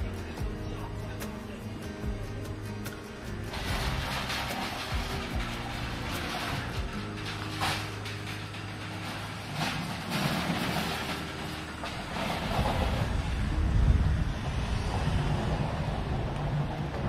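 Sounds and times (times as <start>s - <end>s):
metallic rattles: 0.0s - 13.4s.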